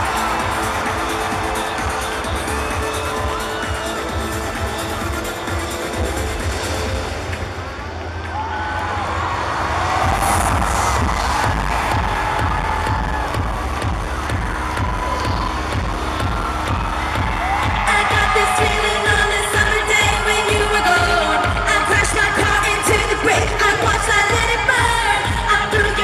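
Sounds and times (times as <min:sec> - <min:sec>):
crowd screaming and cheering: 0:00.0 - 0:26.0
electronic music with heavy bass: 0:00.0 - 0:26.0.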